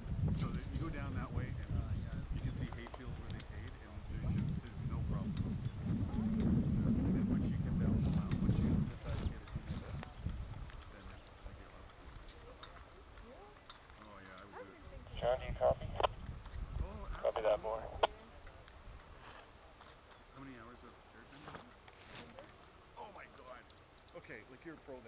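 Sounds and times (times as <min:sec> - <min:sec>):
wind rumbling on microphone: 0:00.0 - 0:13.6, 0:14.6 - 0:20.2
person speaking: 0:14.4 - 0:16.1, 0:16.8 - 0:18.4.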